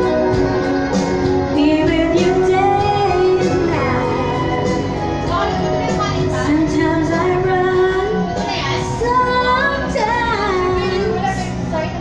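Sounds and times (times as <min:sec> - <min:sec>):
instrumental backing track: 0:00.0 - 0:12.0
woman singing into microphone: 0:01.5 - 0:12.0.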